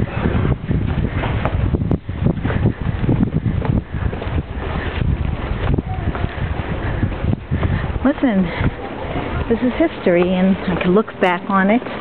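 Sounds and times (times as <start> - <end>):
microphone handling noise: 0.0 - 10.9
wind rumble: 0.0 - 12.0
footsteps on stone: 0.1 - 12.0.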